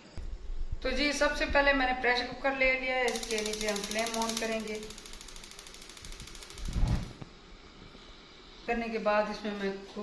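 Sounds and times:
spark igniter ticking: 3.1s - 7.2s.

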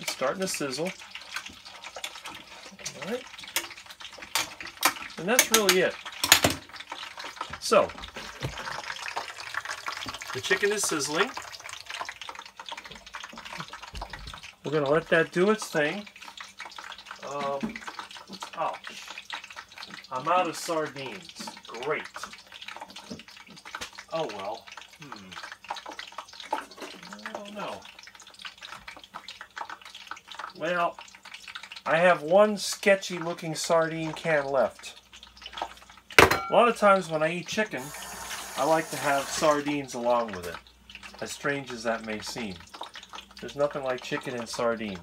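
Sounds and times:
tongs stirring in pot: 0.0s - 14.9s
chicken sizzling in hot fat: 0.0s - 45.0s.

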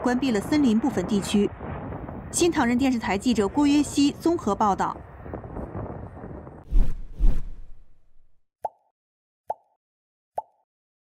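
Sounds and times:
swish with deep thump: 6.6s - 8.4s.

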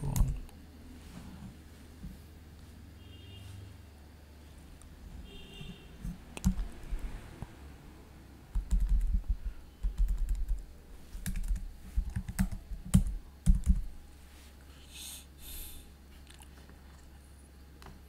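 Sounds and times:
keyboard typing: 6.4s - 7.0s, 8.5s - 13.9s.

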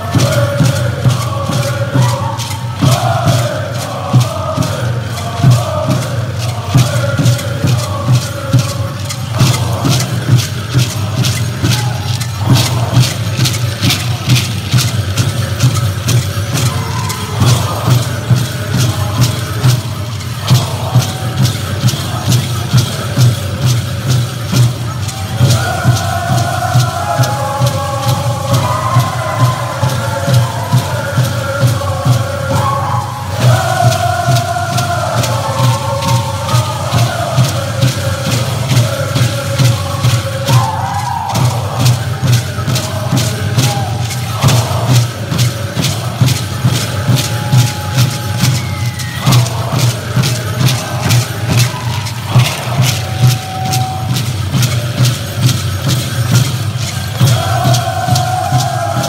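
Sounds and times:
chorus chanting: 0.0s - 59.0s
rattles shaking: 0.0s - 59.0s
steady drumbeat: 0.0s - 59.0s.

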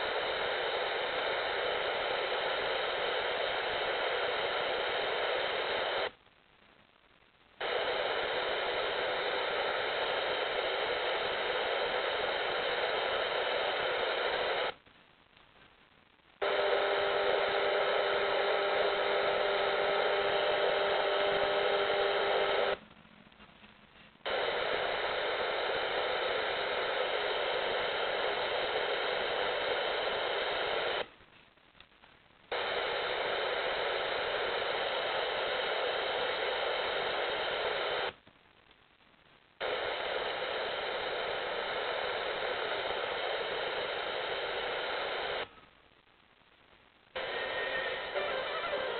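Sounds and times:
radio static hiss: 0.0s - 48.9s.

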